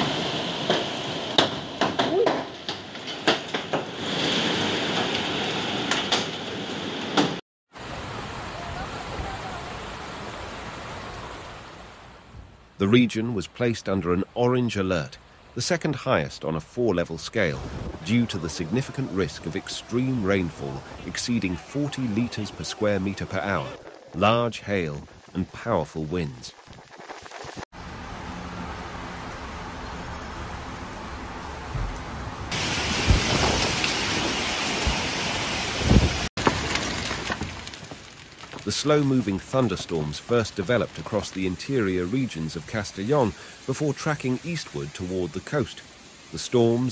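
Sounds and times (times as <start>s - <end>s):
heavy rain: 0.0s - 1.8s, 3.3s - 12.3s, 15.1s - 46.9s
wind: 0.0s - 46.9s
rushing floodwater: 7.7s - 26.4s, 32.5s - 36.7s, 38.6s - 46.9s.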